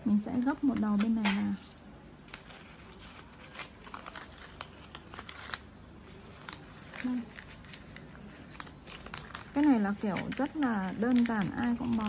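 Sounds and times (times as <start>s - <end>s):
paper rustling and crinkling: 0.4s - 12.0s.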